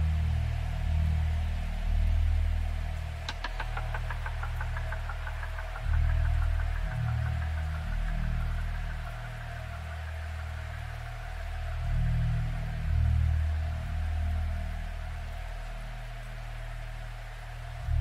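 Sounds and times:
deep bassline: 0.0s - 18.0s
run of clicks: 3.2s - 7.7s.

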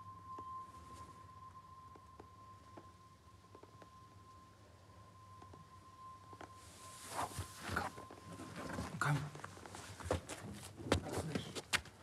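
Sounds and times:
high ringing tone: 0.0s - 9.7s.

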